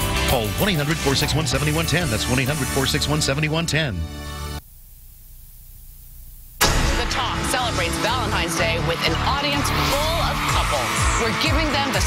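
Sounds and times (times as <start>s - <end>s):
television promo music: 0.0s - 4.7s, 6.4s - 12.0s
low steady hum with hiss: 4.6s - 6.6s.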